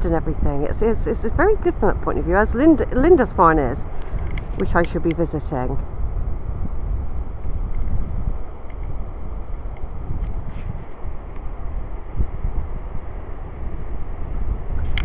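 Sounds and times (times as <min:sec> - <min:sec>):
wind blowing across microphone: 0:00.0 - 0:15.0.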